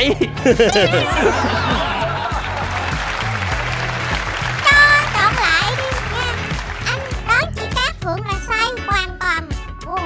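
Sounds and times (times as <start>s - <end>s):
background music with bass line: 0.0s - 10.0s
audience applauding: 0.7s - 7.5s.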